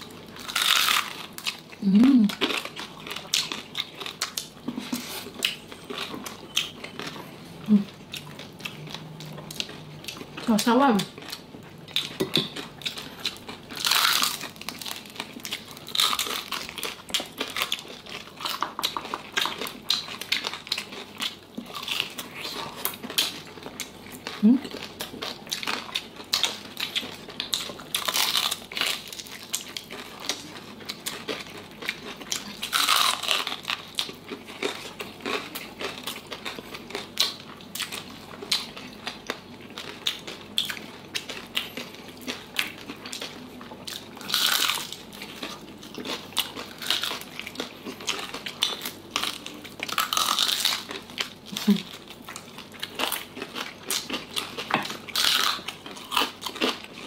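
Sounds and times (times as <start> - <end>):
crispy skin crackling and crunching: 0.0 - 57.0.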